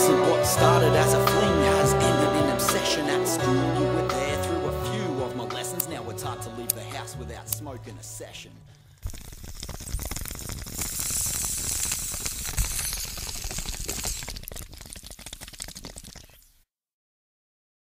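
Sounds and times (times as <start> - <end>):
fire crackling and sizzling: 9.0 - 16.6.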